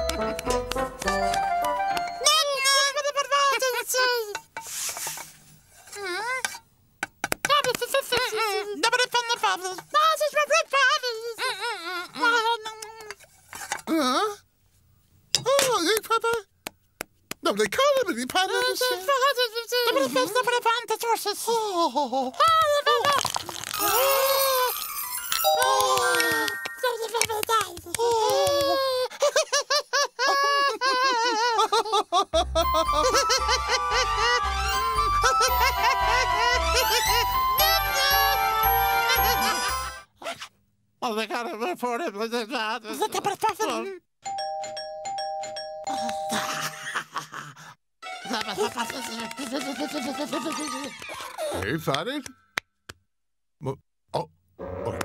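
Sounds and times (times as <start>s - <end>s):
cartoon voices babbling gibberish: 48.8s - 51.8s.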